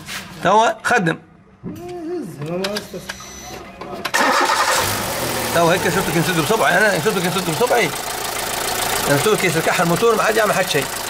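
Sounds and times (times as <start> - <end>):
car engine starting and running: 4.1 - 11.0.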